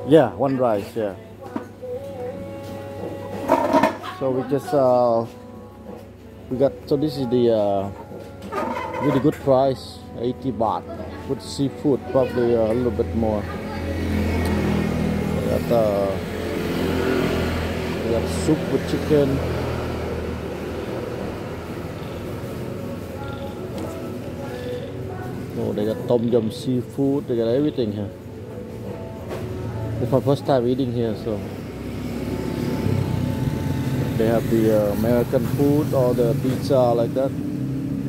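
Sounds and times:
road traffic engine hum: 5.3s - 38.0s.

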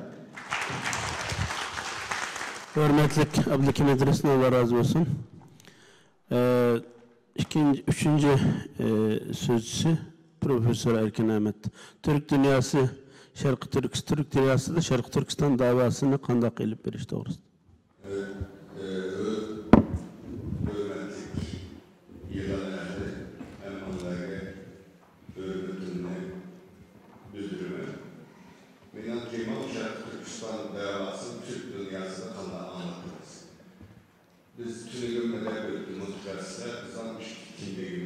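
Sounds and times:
audience applauding: 0.3s - 3.6s
microphone knock: 19.7s - 21.6s.

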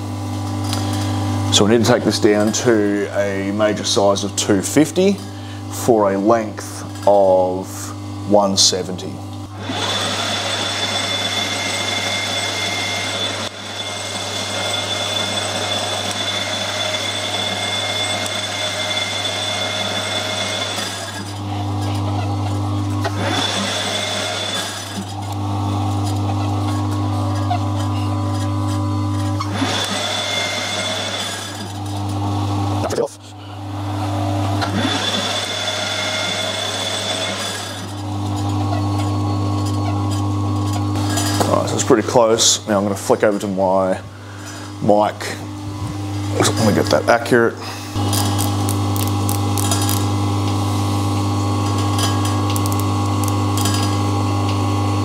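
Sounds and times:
high whine of lathe cutting: 0.0s - 55.0s
metal lathe humming: 0.0s - 55.0s.

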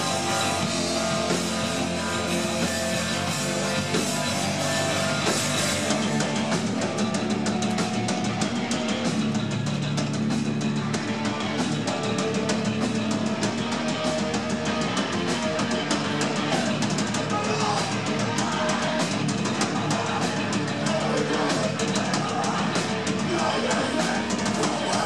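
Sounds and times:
distorted electric guitar: 0.0s - 25.0s
drums with rapid cymbal hits: 0.0s - 25.0s.

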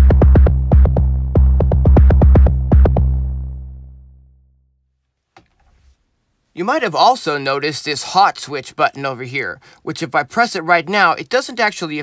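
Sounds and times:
distorted drum synth beat: 0.0s - 3.2s
distorted low note ringing: 0.0s - 4.7s.

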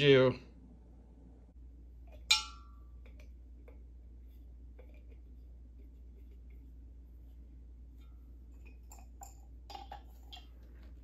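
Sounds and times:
glass jug clinking: 2.1s - 3.3s, 8.5s - 10.7s.

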